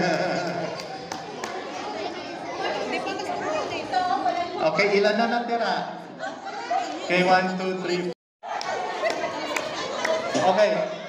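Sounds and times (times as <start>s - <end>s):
crowd chatter echoing in hall: 0.0s - 11.0s.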